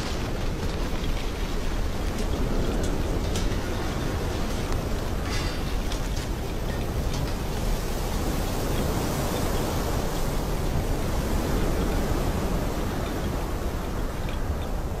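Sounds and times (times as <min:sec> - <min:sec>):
steady rushing wind: 0:00.0 - 0:15.0.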